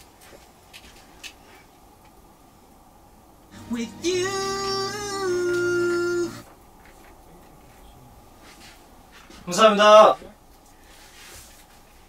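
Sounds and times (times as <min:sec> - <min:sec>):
person singing long note: 0:03.5 - 0:06.5.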